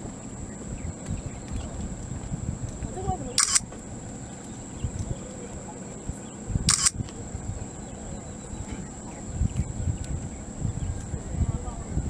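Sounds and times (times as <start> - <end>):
camera shutter clicking: 3.4 - 3.7, 6.7 - 7.0.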